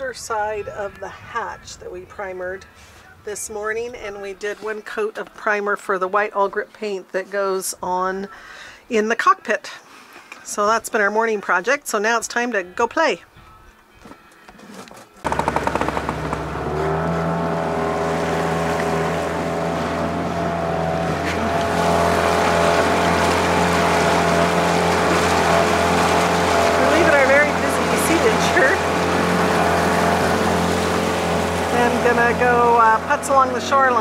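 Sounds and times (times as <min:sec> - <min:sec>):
outboard motor running: 0:15.2 - 0:34.0
water hissing along hull: 0:16.8 - 0:34.0.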